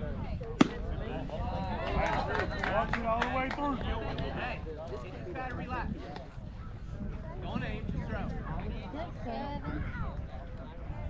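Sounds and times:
baseball smacking: 0.6 - 0.9.

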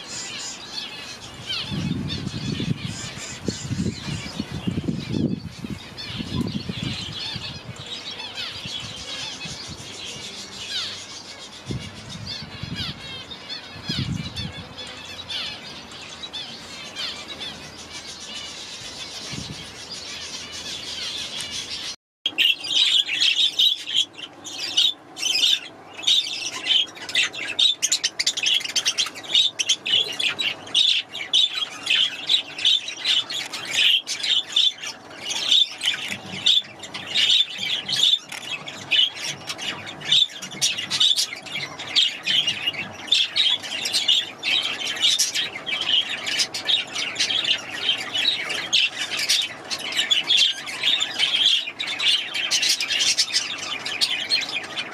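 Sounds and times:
parakeets chirping and chattering: 0.0 - 54.9
parakeet squawks: 22.3 - 54.9.

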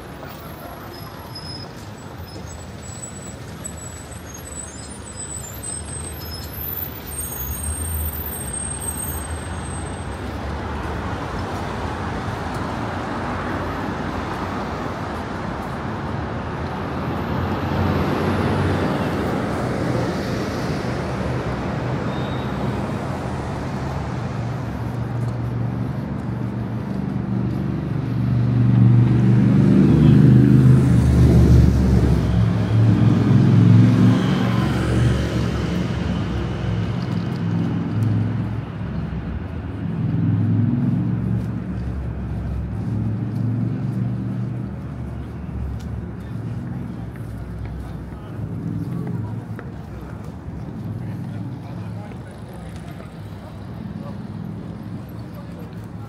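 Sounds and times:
cars and buses driving past: 0.0 - 56.0
heavy vehicle engine rumble: 0.0 - 56.0.

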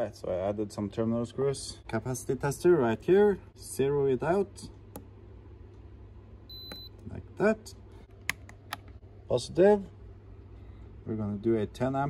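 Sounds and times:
short high-pitched buzzer beep: 6.5 - 6.9.

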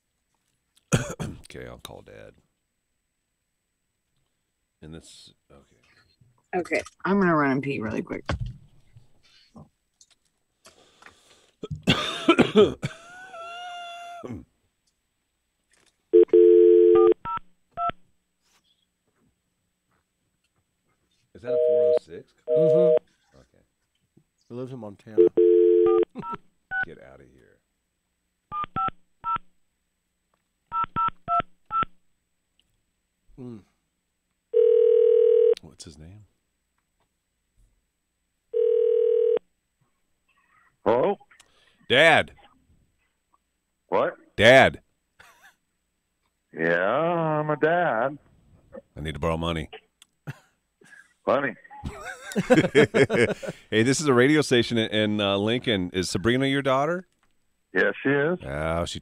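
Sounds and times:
person coughing loudly: 0.9 - 1.4, 11.6 - 13.1
telephone ringback tone: 16.2 - 17.2, 21.6 - 23.0, 25.2 - 26.0, 34.6 - 35.5, 38.6 - 39.4
person speaking on phone: 21.4 - 23.1
telephone dial tone: 38.6 - 39.4.

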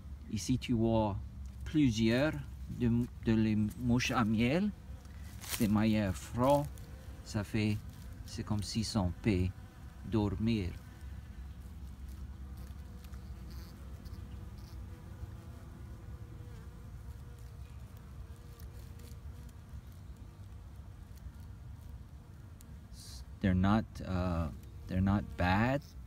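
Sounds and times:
bees buzzing in a low drone: 0.0 - 26.0.

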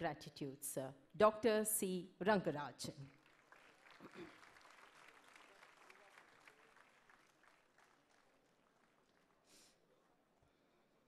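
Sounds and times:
audience applause: 3.1 - 9.7.

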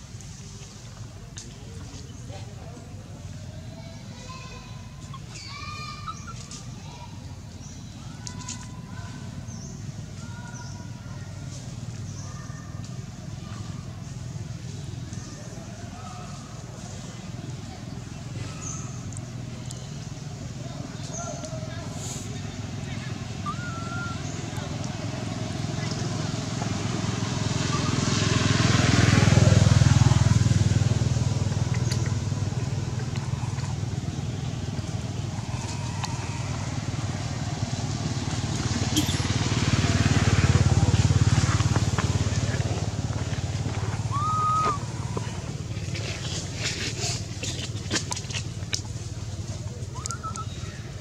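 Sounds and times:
distant vehicles passing: 0.0 - 51.0.

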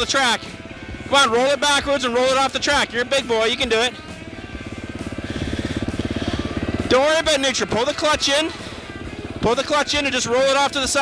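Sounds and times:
dirt bike engine idling: 0.0 - 11.0.

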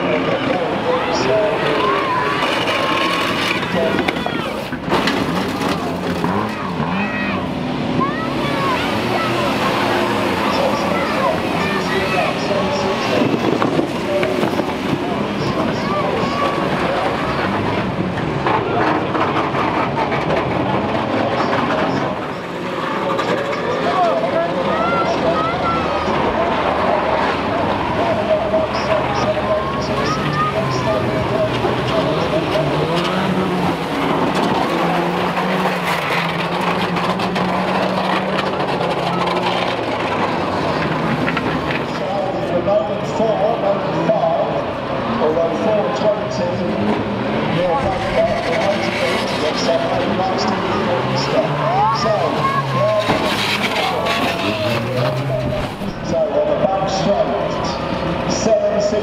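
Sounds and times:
voice over loudspeakers: 0.0 - 4.7, 6.2 - 59.0
racing engines revving: 0.0 - 59.0.

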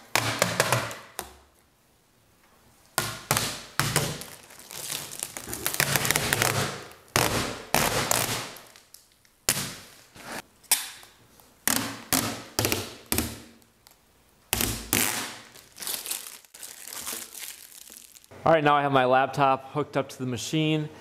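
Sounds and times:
plastic film peeling off: 4.0 - 9.3, 14.8 - 18.3.

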